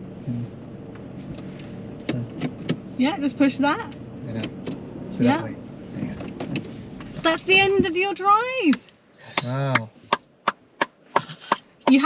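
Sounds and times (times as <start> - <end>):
hand clapping: 9.4 - 12.0.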